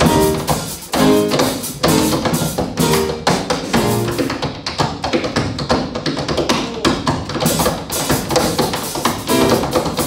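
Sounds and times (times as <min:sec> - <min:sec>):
jazz drums: 0:00.0 - 0:10.0
tap shoes on wooden board: 0:00.9 - 0:10.0.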